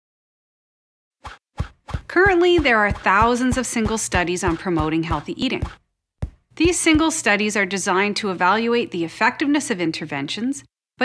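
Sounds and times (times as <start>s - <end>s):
soft low thuds: 1.6s - 7.3s.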